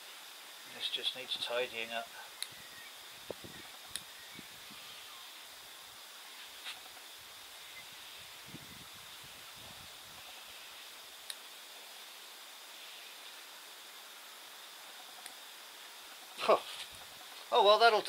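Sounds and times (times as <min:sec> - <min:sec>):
foliage rustling: 0:00.0 - 0:18.0.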